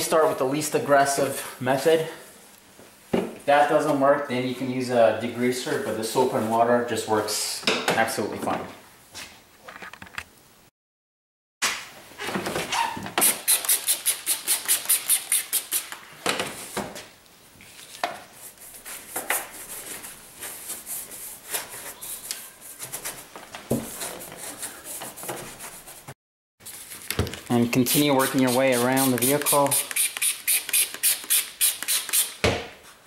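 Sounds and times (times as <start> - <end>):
brush scrubbing soapy panels: 27.8 - 30.0.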